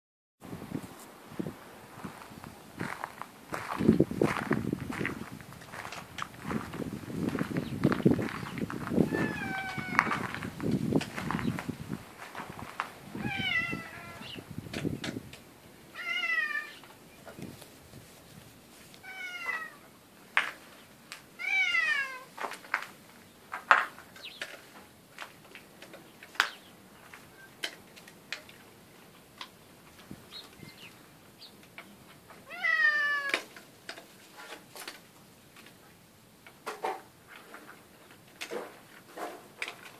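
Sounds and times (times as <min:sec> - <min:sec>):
cat meowing: 0:09.0 - 0:10.3, 0:13.2 - 0:14.4, 0:15.9 - 0:16.8, 0:19.0 - 0:19.8, 0:21.4 - 0:22.3, 0:32.4 - 0:33.5.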